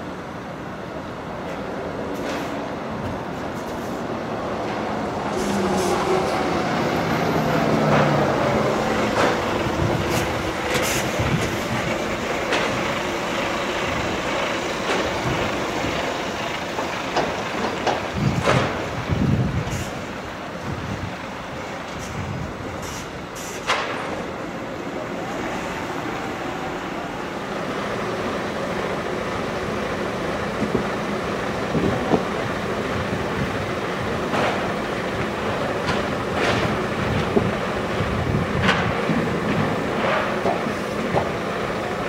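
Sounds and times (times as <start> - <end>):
mechanical rumble: 4.6 - 22.8.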